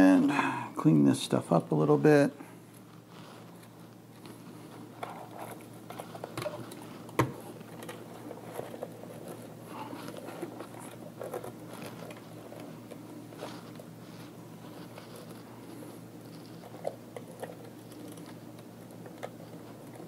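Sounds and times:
wires and cables rustling: 0:01.4 - 0:20.0.

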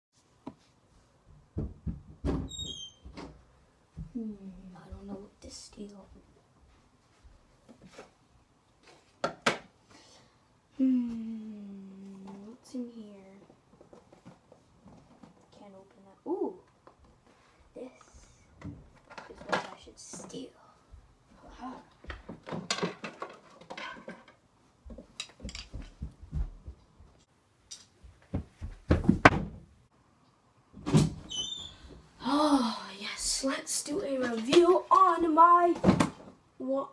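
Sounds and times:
sharp knocks on wooden shelf: 0:01.5 - 0:02.5
objects moved on wooden shelf: 0:22.2 - 0:26.0.

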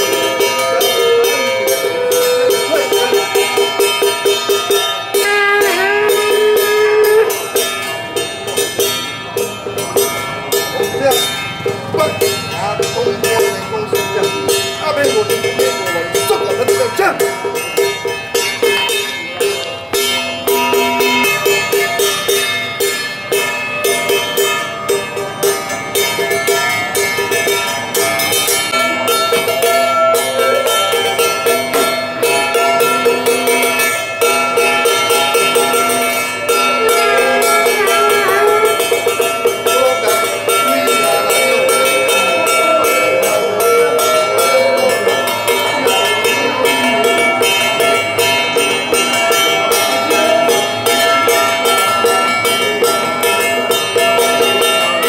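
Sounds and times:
drum beats: 0:00.0 - 0:55.0
small metal bells clanging: 0:00.0 - 0:55.0
person chanting: 0:05.1 - 0:07.5, 0:35.0 - 0:55.0.

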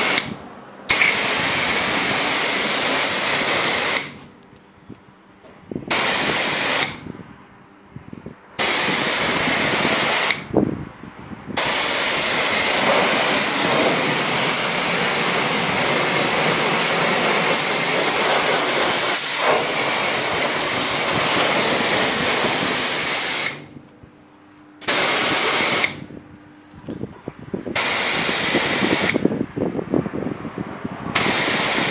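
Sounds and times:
pressure washer spraying water: 0:00.0 - 0:04.3, 0:05.9 - 0:07.0, 0:08.6 - 0:10.5, 0:11.6 - 0:23.9, 0:24.8 - 0:26.1, 0:27.7 - 0:29.3, 0:31.2 - 0:31.9.

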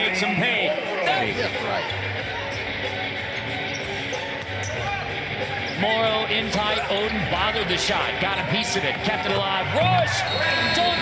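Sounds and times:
arena crowd noise: 0:00.0 - 0:11.0
background music: 0:00.0 - 0:11.0.

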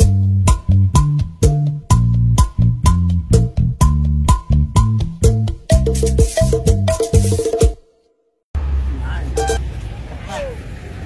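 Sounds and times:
low rumble of traffic: 0:08.6 - 0:11.0.

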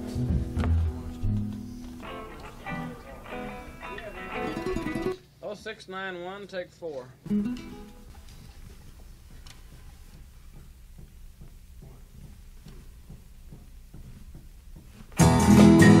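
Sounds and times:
plucked acoustic guitar: 0:00.0 - 0:05.2, 0:07.3 - 0:08.0, 0:15.2 - 0:16.0
studio hiss with ticks: 0:05.4 - 0:13.7.

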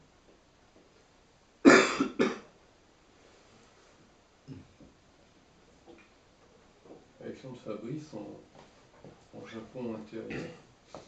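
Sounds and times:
person coughing: 0:01.7 - 0:02.5, 0:10.3 - 0:10.6.

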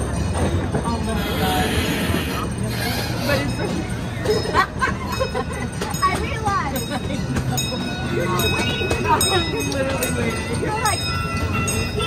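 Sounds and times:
miniature train rumbling on track: 0:00.0 - 0:12.0
people's voices: 0:00.0 - 0:12.0.

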